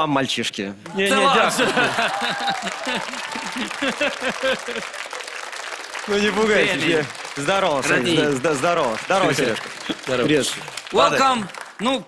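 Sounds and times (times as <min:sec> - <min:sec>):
audience applauding: 0:00.9 - 0:12.0
man speaking rapid syllables: 0:06.1 - 0:12.0.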